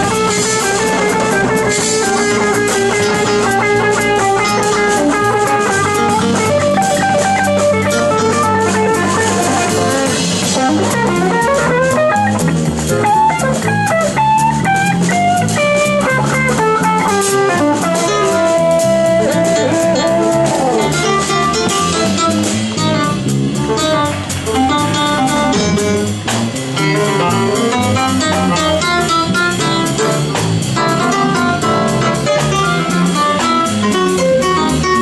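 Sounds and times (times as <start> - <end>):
bass: 0.0 - 35.0
drum kit: 0.0 - 35.0
electric guitar with bent note: 0.0 - 35.0.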